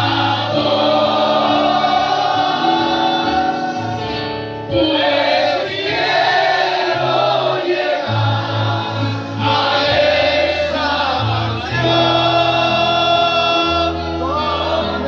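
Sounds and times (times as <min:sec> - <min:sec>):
congregation singing a hymn: 0:00.0 - 0:15.0.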